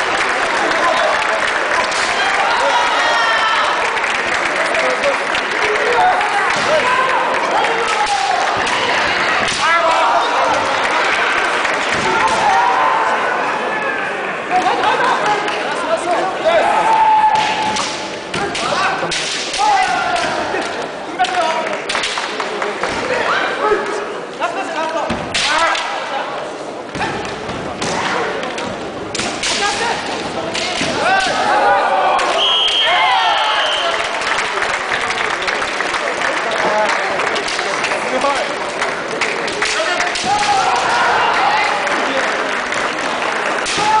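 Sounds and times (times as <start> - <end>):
audience applause in a large hall: 0.0 - 13.7, 14.5 - 17.2, 20.4 - 23.2, 31.1 - 44.0
fencers yelling: 39.7 - 41.8.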